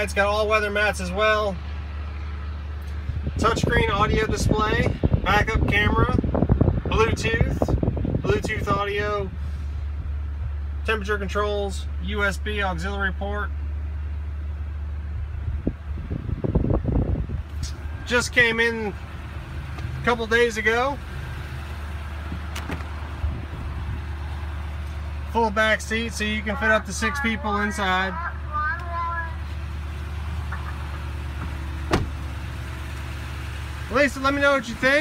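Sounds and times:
truck cab hum: 0.0s - 35.0s.

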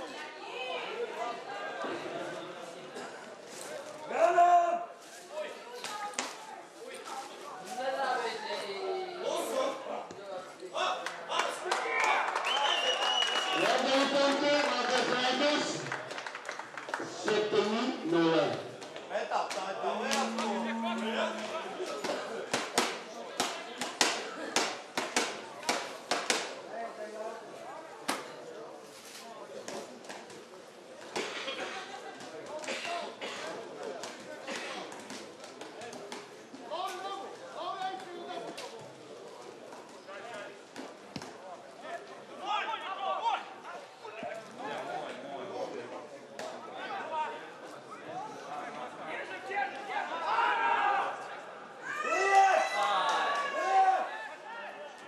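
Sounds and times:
outdoor chatter: 0.0s - 55.0s
voices calling and shouting: 19.7s - 22.2s.

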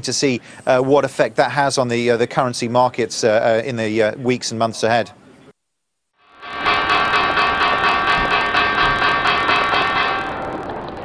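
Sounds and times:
electronic jingle: 6.2s - 11.0s.

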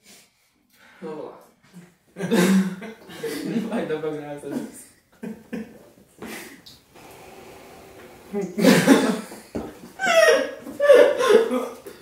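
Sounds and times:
men laughing: 2.2s - 3.7s, 5.2s - 6.5s, 8.2s - 11.9s.

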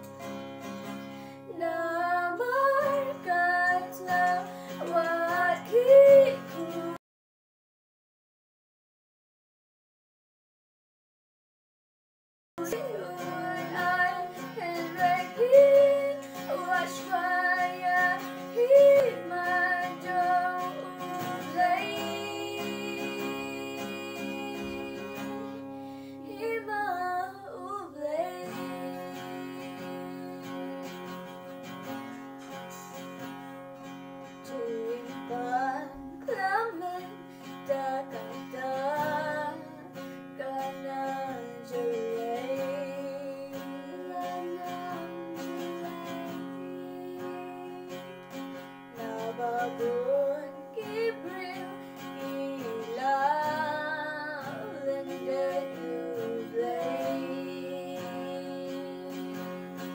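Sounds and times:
acoustic guitar chords: 0.0s - 7.0s, 12.6s - 59.9s
women singing: 1.5s - 7.0s, 12.6s - 31.0s, 34.4s - 48.2s, 49.0s - 59.9s.

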